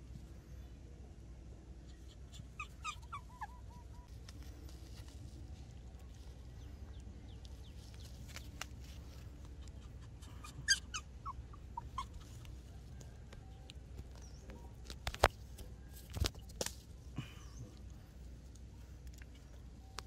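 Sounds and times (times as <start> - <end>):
high-pitched squeaks and yips: 2.0 - 4.1, 9.8 - 12.5.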